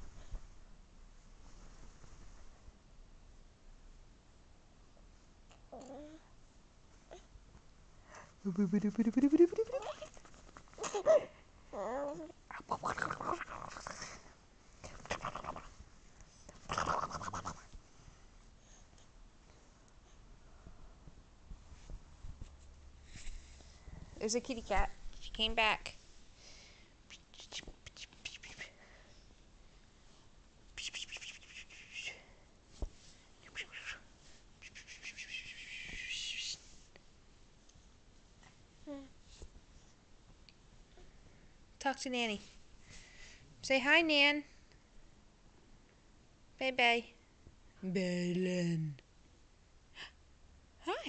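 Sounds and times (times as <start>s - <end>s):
person whispering: 27.1s - 28.8s, 30.8s - 32.2s, 33.4s - 34.0s.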